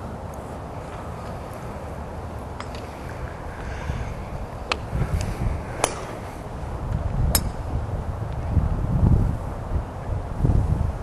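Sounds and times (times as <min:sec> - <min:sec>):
wind rumble on microphone: 0:00.0 - 0:11.0
distant golf club striking ball: 0:05.8 - 0:06.2.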